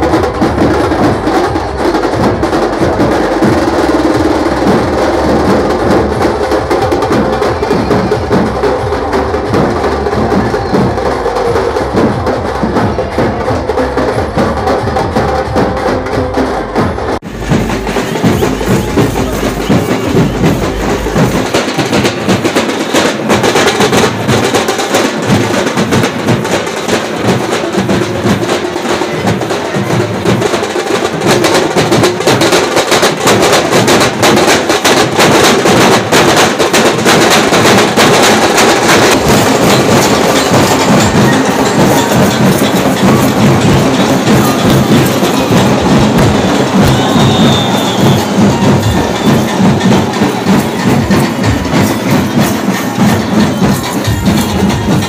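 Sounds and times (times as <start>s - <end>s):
drumming: 0.0s - 55.0s.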